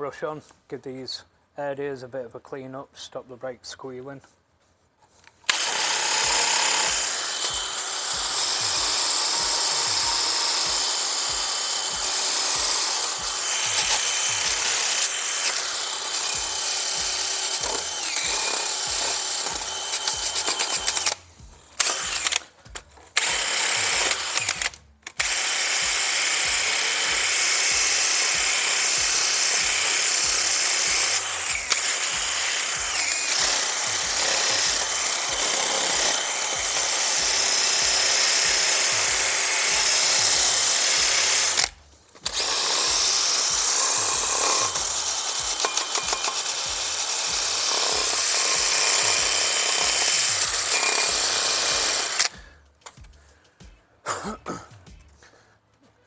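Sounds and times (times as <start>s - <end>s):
drill wire brush scrubbing metal: 5.5s - 22.3s, 25.2s - 52.4s.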